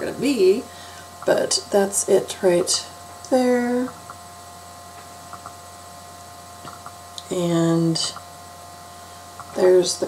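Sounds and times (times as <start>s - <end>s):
electrical hum with high tones: 0.0s - 10.0s.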